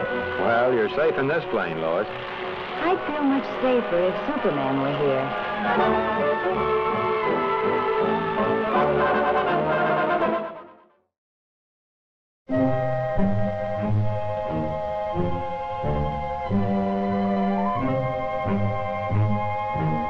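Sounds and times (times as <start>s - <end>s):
brass-led orchestral music: 0.0s - 11.0s, 12.5s - 20.0s.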